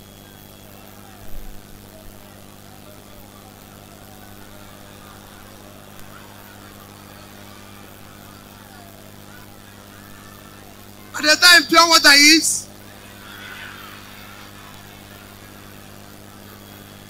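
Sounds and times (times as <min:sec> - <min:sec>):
faint indistinct voices: 0:00.0 - 0:17.0.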